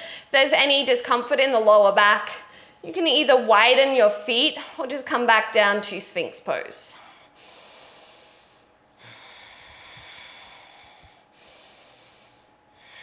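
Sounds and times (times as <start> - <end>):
woman breathing through nose: 7.0 - 13.0.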